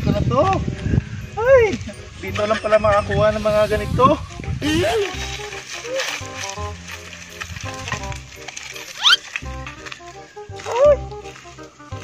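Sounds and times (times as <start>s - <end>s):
background music with bass line: 0.0s - 12.0s
sticks clattering: 4.6s - 12.0s.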